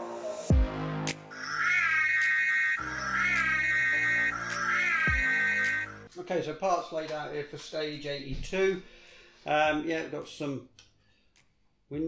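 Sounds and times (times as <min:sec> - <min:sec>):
high wavering melody: 0:01.3 - 0:06.1.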